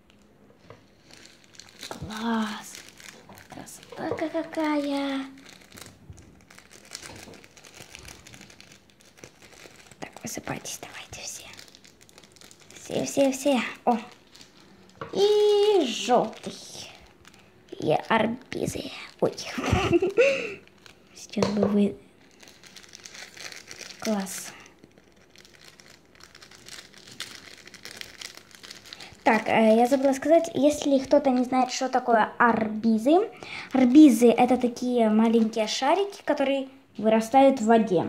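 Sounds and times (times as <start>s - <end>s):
plastic sachet crinkling: 0.0s - 32.2s, 33.0s - 36.4s.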